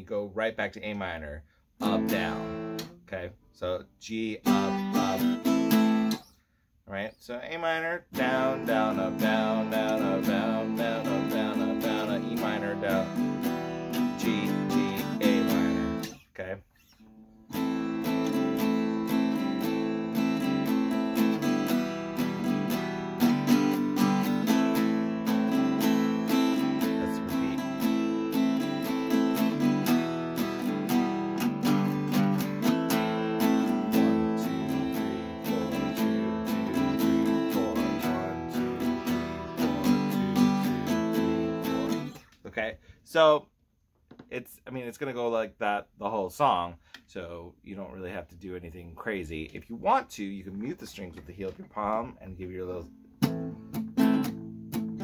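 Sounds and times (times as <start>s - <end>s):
acoustic guitar strumming: 1.8s - 3.1s, 4.1s - 6.4s, 7.6s - 42.4s, 52.8s - 55.0s.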